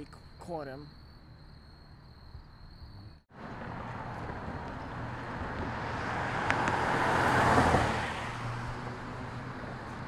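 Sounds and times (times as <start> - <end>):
car passing: 3.0 - 10.0.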